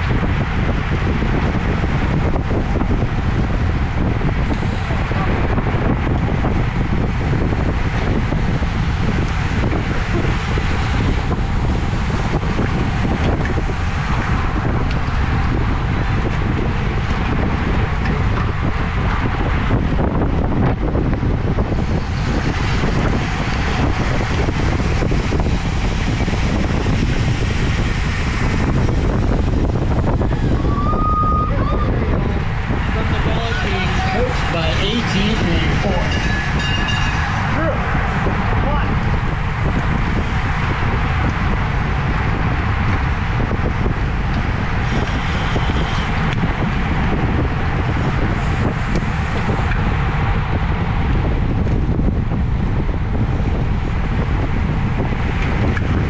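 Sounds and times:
wind buffeting microphone: 0:00.0 - 0:56.0
voices: 0:30.6 - 0:36.6.

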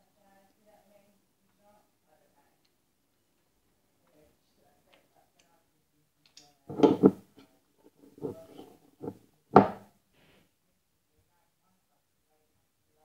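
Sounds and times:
knife scraping a plate: 0:08.0 - 0:09.2.

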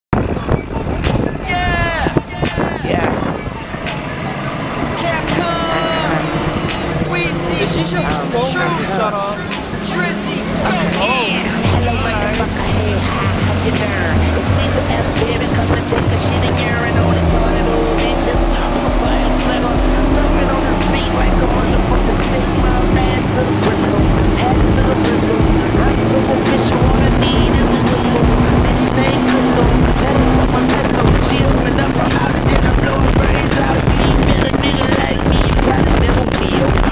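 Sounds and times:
wind: 0:00.1 - 0:36.9
music with vocals: 0:00.2 - 0:36.9
outboard motors running: 0:00.2 - 0:36.9
rushing water: 0:00.2 - 0:36.9.

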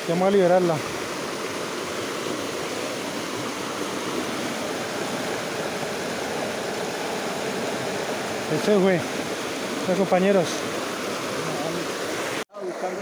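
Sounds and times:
creek water rushing over rocks: 0:00.0 - 0:13.0.

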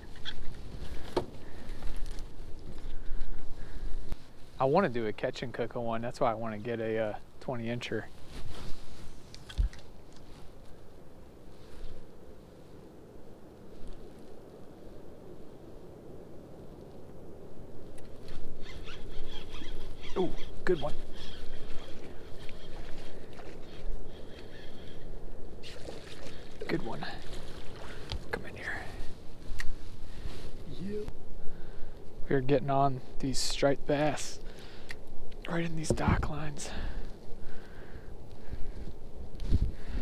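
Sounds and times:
wind buffeting microphone: 0:35.0 - 0:40.0.

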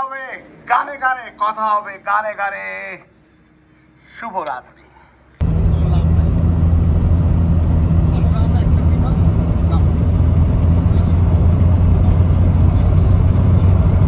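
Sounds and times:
vehicle engine and road drone: 0:05.4 - 0:14.0.

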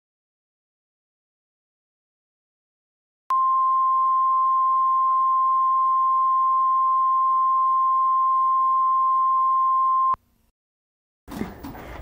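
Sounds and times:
steady sine reference tone: 0:03.3 - 0:10.2.

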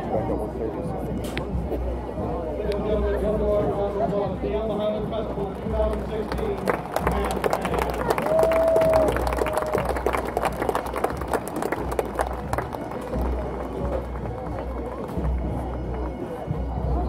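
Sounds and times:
outdoor crowd: 0:00.0 - 0:17.0.

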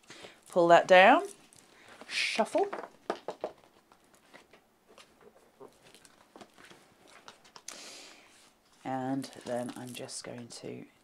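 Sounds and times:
paper and card rustling: 0:01.3 - 0:07.7, 0:08.3 - 0:10.6.

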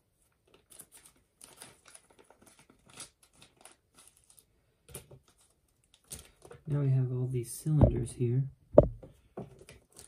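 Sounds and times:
plastic parts clicking in bag: 0:00.4 - 0:06.7, 0:09.5 - 0:10.0.

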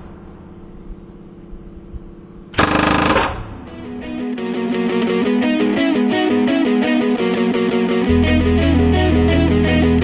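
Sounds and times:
pneumatic impact wrench hammering: 0:02.6 - 0:03.5, 0:04.4 - 0:07.5
electric guitar rock music: 0:03.6 - 0:10.0.

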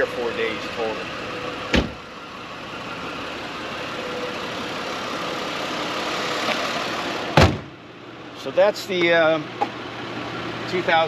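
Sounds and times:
car engine idling: 0:00.0 - 0:11.0
car door thump: 0:01.7 - 0:02.0, 0:07.3 - 0:07.8.

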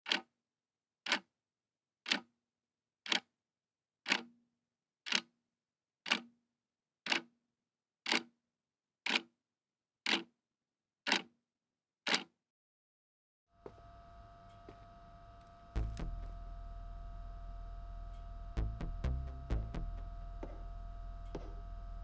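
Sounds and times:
clock ticking: 0:04.1 - 0:04.3, 0:06.1 - 0:06.3, 0:07.1 - 0:07.3, 0:11.1 - 0:11.3, 0:18.1 - 0:22.0.

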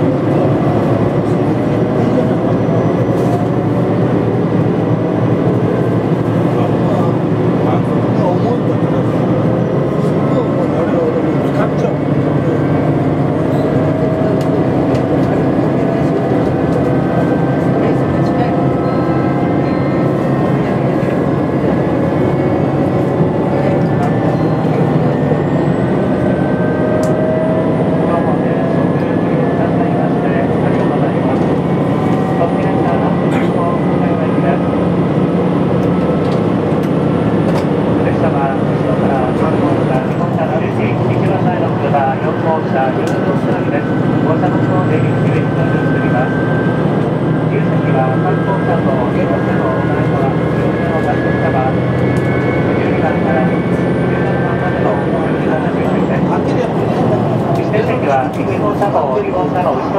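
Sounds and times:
train engine and running drone: 0:00.0 - 0:59.9.

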